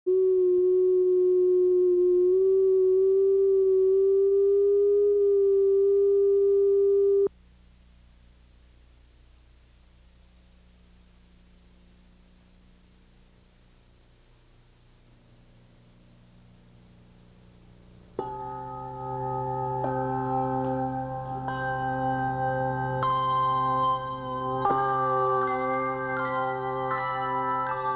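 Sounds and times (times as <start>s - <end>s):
electronic test tone: 0.1s - 7.3s
faint tape hiss: 0.1s - 27.9s
handbell chords ringing: 18.2s - 27.9s.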